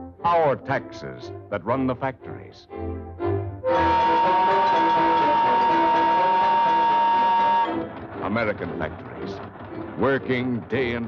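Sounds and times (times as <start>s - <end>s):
orchestral music: 0.0s - 11.0s
steam whistle blast: 3.6s - 7.8s.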